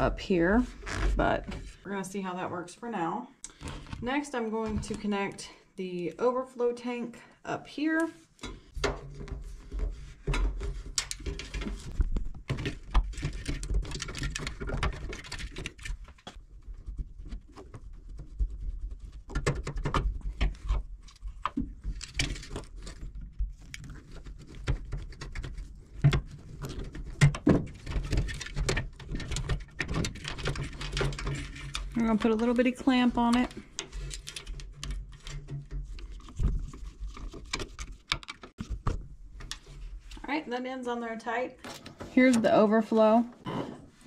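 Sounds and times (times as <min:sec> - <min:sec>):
rubber hose handling clicks and scrapes: 0:00.0 - 0:01.9, 0:03.4 - 0:05.5, 0:07.8 - 0:40.4.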